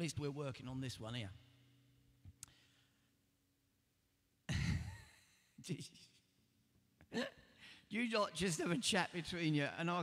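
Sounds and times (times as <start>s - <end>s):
man chuckling: 4.5s - 5.5s, 7.1s - 7.5s.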